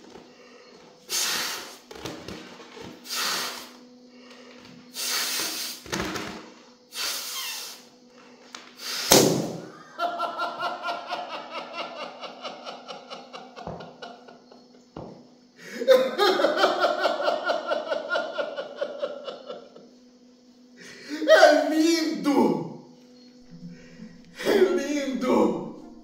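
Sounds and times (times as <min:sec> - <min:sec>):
balloon squealing air escaping: 0:01.1 - 0:01.8, 0:03.0 - 0:03.8, 0:05.0 - 0:05.8, 0:06.9 - 0:07.9
breaths blown into balloon: 0:01.1 - 0:01.8, 0:03.0 - 0:03.8, 0:04.9 - 0:05.8, 0:06.9 - 0:07.9, 0:08.8 - 0:09.2, 0:23.4 - 0:24.9
loud burst of air: 0:01.1 - 0:01.8, 0:03.0 - 0:03.8, 0:04.9 - 0:05.9, 0:06.9 - 0:07.9, 0:08.8 - 0:09.7.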